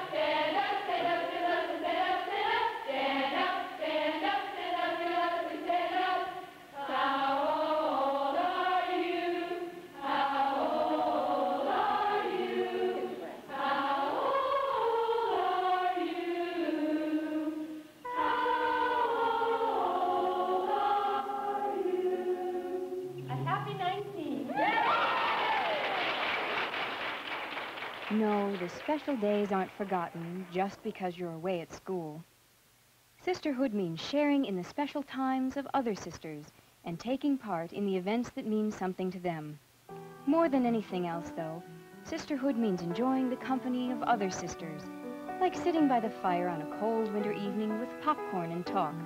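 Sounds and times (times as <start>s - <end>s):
group of people singing: 0.0s - 24.2s
crowd applauding: 24.6s - 30.6s.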